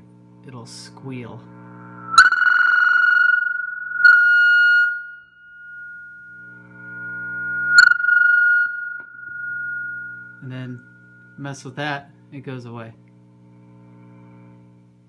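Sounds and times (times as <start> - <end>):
guitar amp squealing: 1.7 - 11.7.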